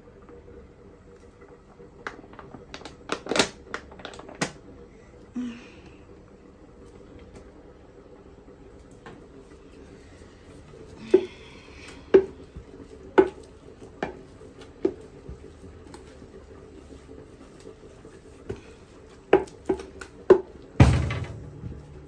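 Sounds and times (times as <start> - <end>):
pestle pounding in wooden mortar: 19.3 - 21.3.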